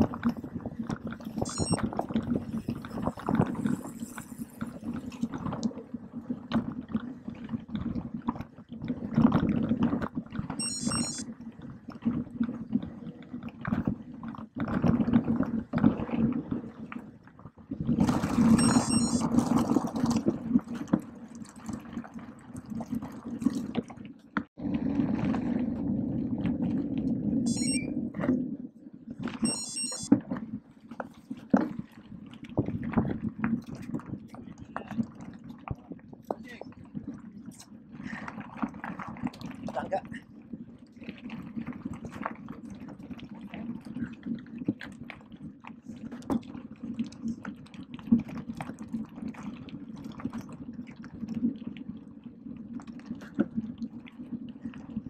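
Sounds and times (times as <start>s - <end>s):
high-pitched buzzing bursts: 27.5s - 27.8s, 29.5s - 30.1s.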